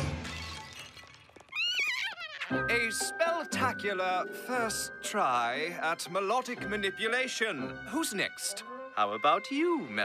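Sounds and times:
soft background music: 2.5 - 10.0.

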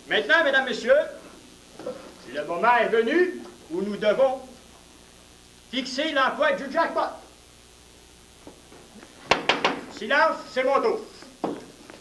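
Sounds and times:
quick sharp knocks: 9.3 - 9.9.

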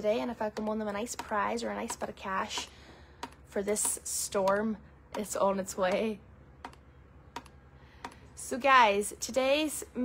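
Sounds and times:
faint low hum: 0.0 - 10.0
computer clicks: 6.6 - 8.3.

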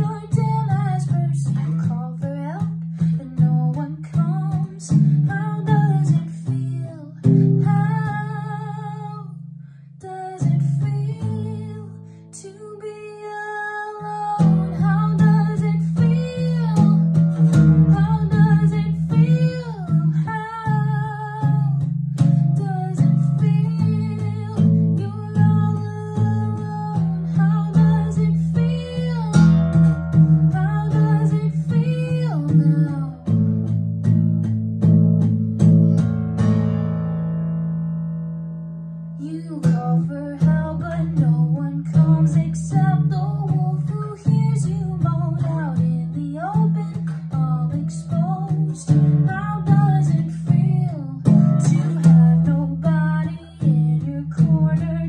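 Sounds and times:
woman singing: 0.0 - 34.3, 39.2 - 55.0
strummed acoustic guitar: 0.0 - 55.0.

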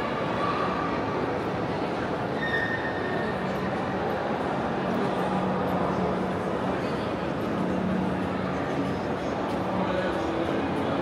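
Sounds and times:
indoor crowd noise: 0.0 - 11.0
thin high squeal: 2.4 - 3.2.

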